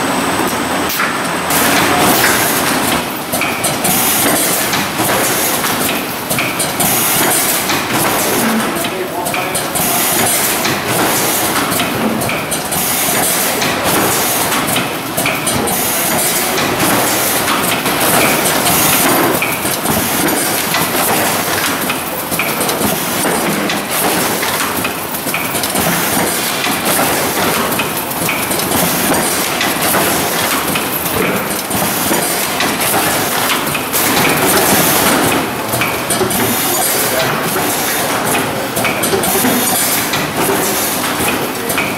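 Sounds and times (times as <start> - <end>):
steady mechanical clatter: 0.0 - 41.9.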